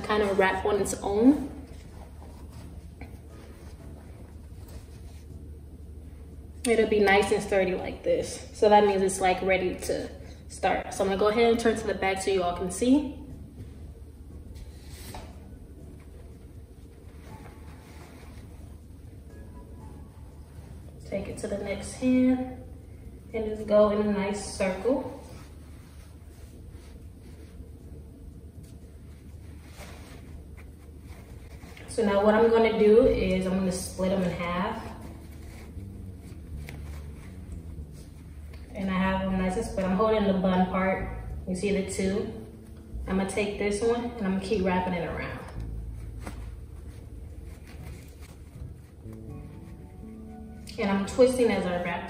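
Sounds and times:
fabric rustling: 0:00.0 - 0:06.3, 0:13.7 - 0:21.1, 0:24.6 - 0:39.8, 0:45.2 - 0:50.4
low room rumble: 0:00.0 - 0:52.0
steady low hum: 0:00.0 - 0:52.0.

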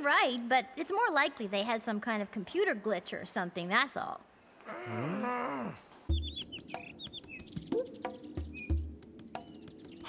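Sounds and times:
birds chirping: 0:04.6 - 0:10.0
background music with bass notes: 0:06.1 - 0:10.0.

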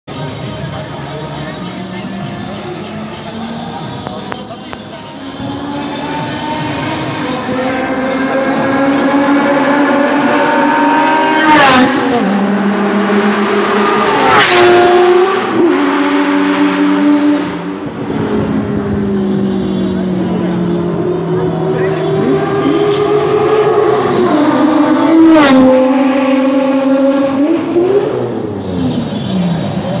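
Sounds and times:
race car engines passing: 0:00.2 - 0:30.0.

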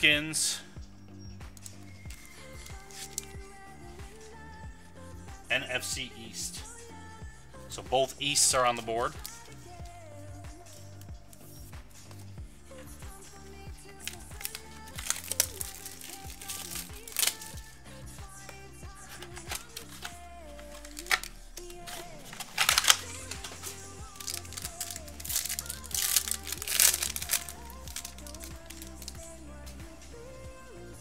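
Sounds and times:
background music: 0:00.0 - 0:31.0
card pack wrappers crinkling: 0:01.6 - 0:04.3, 0:07.9 - 0:09.8, 0:13.4 - 0:30.3.

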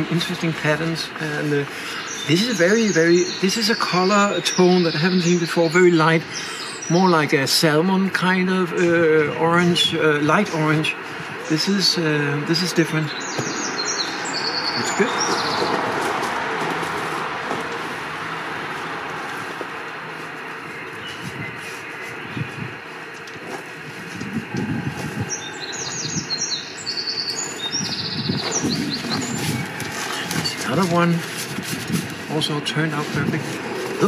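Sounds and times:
songbirds chirping: 0:00.0 - 0:34.0.

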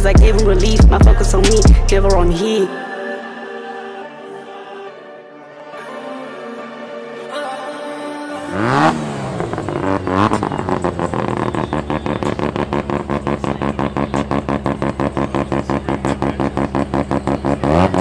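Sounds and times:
car engine starting and revving: 0:00.0 - 0:02.4, 0:08.4 - 0:18.0
engine pulsing idle: 0:00.0 - 0:02.4, 0:08.5 - 0:18.0.

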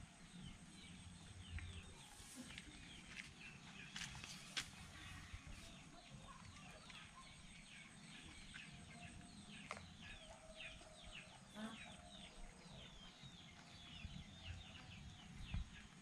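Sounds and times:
birds chirping: 0:00.0 - 0:16.0.

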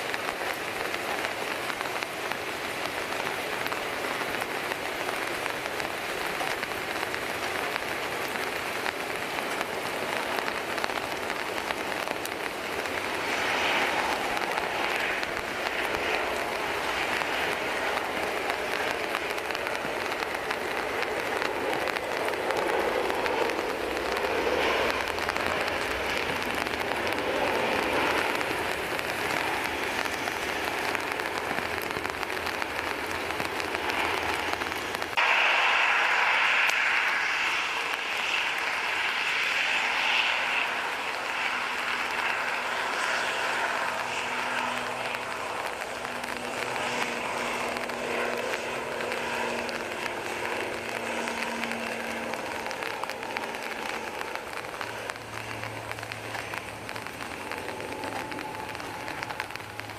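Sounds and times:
steady rain falling: 0:00.0 - 0:59.9.

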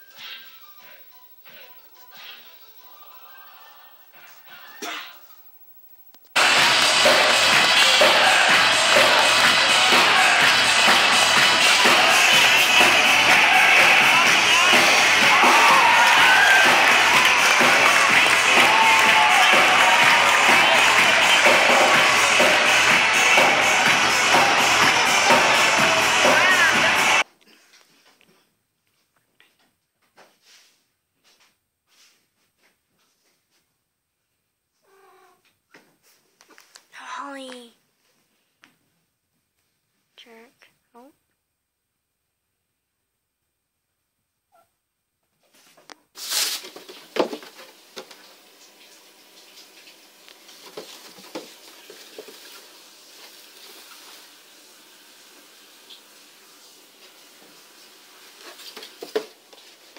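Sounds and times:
concert crowd noise: 0:06.4 - 0:27.2
live rock band music: 0:06.4 - 0:27.2
cat meowing: 0:34.8 - 0:35.4.

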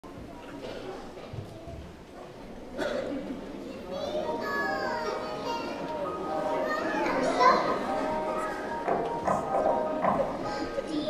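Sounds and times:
faint music: 0:00.1 - 0:11.0.

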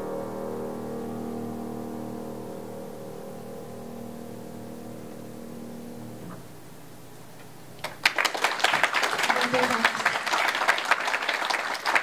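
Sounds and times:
piano chord ringing: 0:00.0 - 0:06.7
applause: 0:07.8 - 0:12.0.

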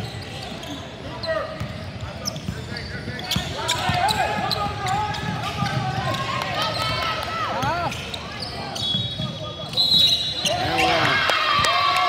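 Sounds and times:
sneaker squeaks: 0:00.0 - 0:11.1.

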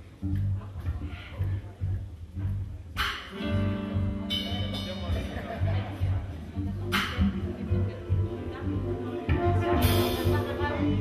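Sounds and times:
jazz band playing: 0:02.6 - 0:11.0.

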